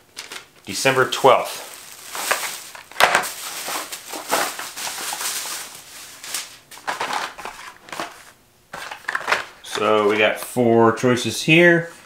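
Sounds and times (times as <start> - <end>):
plastic bag rustling and crinkling: 0.0 - 10.4.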